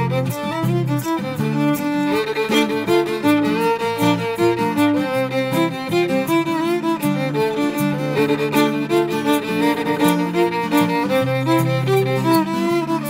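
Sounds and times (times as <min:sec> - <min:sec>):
fiddle melody: 0:00.0 - 0:13.0
guitar accompaniment: 0:00.0 - 0:13.0.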